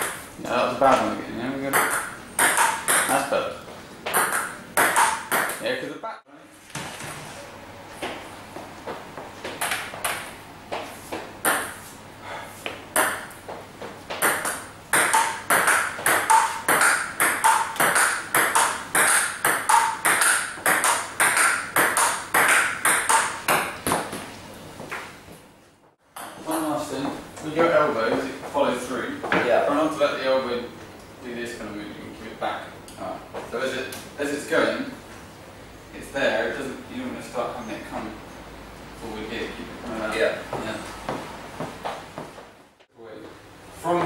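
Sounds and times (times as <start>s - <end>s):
table tennis ball hits: 0.0s - 0.3s, 1.7s - 3.2s, 4.0s - 5.6s, 9.4s - 11.8s, 12.6s - 13.4s, 14.1s - 24.3s, 26.2s - 26.7s.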